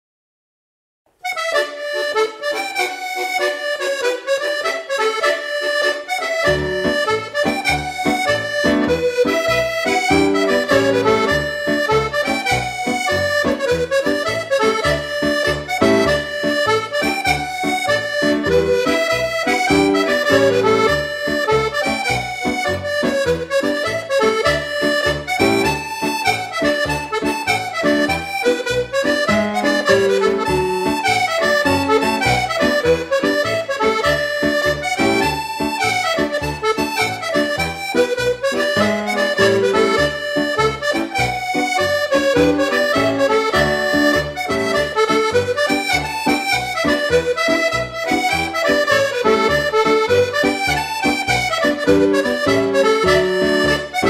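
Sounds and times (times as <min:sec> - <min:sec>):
piano accordion march: 0:01.2 - 0:54.0.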